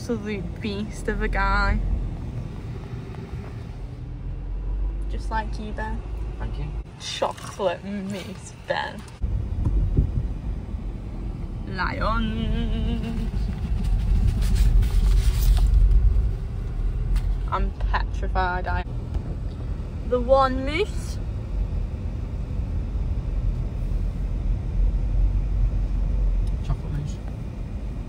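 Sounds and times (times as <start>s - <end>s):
car engine and tyres rumbling: 0.0s - 28.0s.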